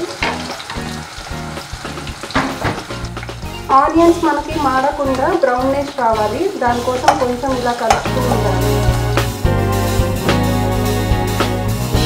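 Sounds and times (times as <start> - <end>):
onions sizzling in hot oil: 0.0 - 9.4
background music: 0.0 - 12.0.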